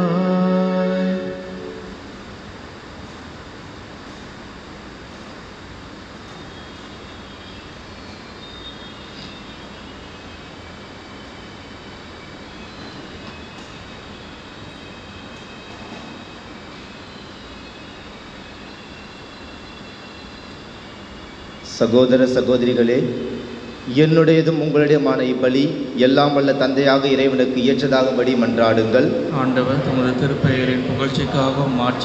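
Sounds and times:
low rush and hiss: 0:00.0 - 0:32.0.

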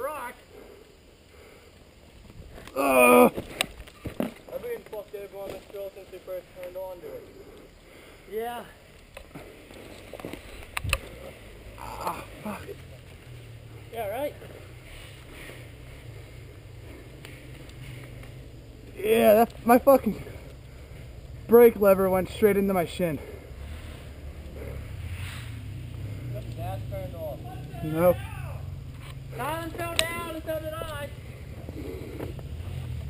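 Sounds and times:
dirt bike engine idling: 0:04.2 - 0:33.0.

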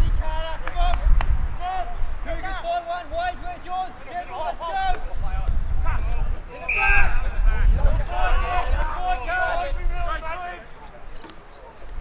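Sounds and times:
men shouting: 0:06.6 - 0:10.6.

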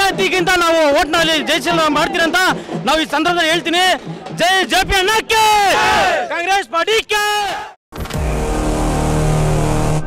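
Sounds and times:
drums: 0:00.0 - 0:06.4
man shouting: 0:04.4 - 0:07.8.

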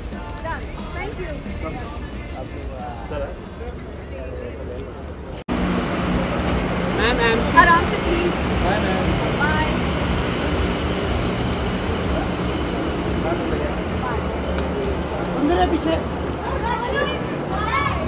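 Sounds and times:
traffic: 0:00.0 - 0:18.0.

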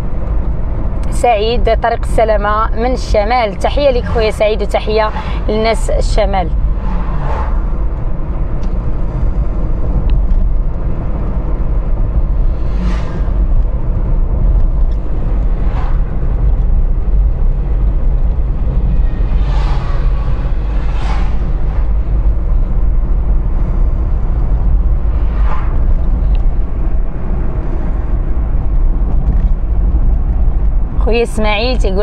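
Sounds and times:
car road and engine rumble: 0:00.0 - 0:32.0
vehicles swishing past: 0:03.0 - 0:31.9.

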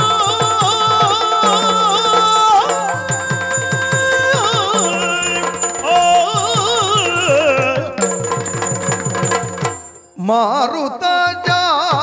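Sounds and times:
person singing: 0:00.0 - 0:08.2
drums beating quick rhythm: 0:00.0 - 0:10.1, 0:11.2 - 0:12.0
hand cymbals ringing: 0:00.0 - 0:10.2.

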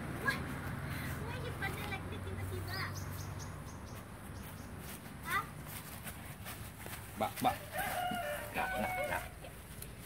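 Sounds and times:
rooster crowing: 0:07.5 - 0:09.5.

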